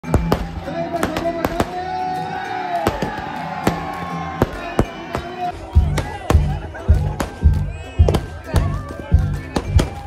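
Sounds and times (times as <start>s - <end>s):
fireworks bangs: 0.0s - 1.8s
music over loudspeakers: 0.0s - 10.0s.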